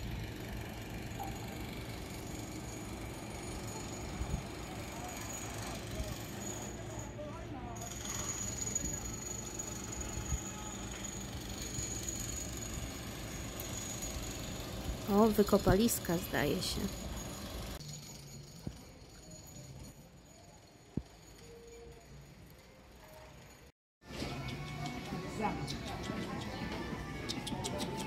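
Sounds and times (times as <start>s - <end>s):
faint distant voices: 3.6s - 11.4s.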